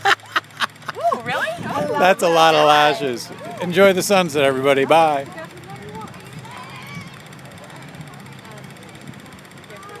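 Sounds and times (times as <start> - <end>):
distant voices: 0.0 - 10.0
low engine hum: 0.0 - 10.0.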